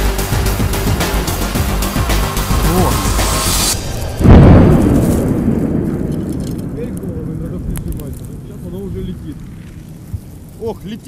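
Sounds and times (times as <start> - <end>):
background music: 0.0 - 5.8
loud explosion with rumble: 3.8 - 10.5.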